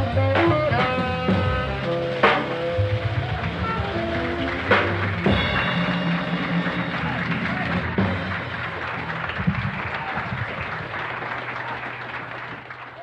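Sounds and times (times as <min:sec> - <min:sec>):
jazz band last notes: 0:00.0 - 0:12.5
voices in crowd: 0:00.0 - 0:13.0
audience applause: 0:00.8 - 0:13.0.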